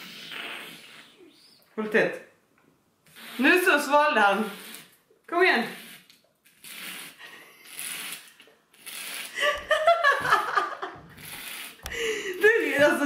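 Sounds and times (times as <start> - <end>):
breathy sucking through a straw: 0.0 - 1.6, 3.0 - 5.0, 5.6 - 9.6, 11.1 - 12.6
laughter: 9.4 - 11.1.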